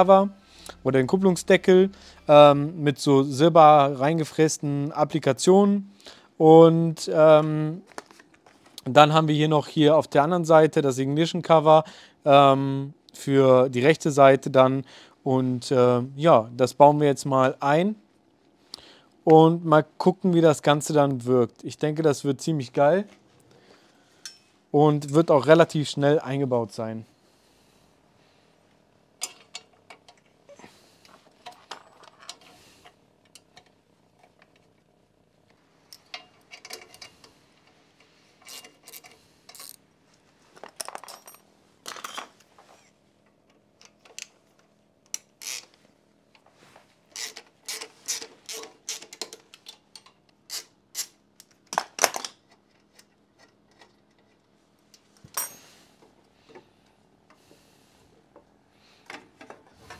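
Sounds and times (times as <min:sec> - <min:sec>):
wrench clicking on bolts: 0:38.4 - 0:39.8, 0:45.1 - 0:45.7, 0:47.2 - 0:51.2.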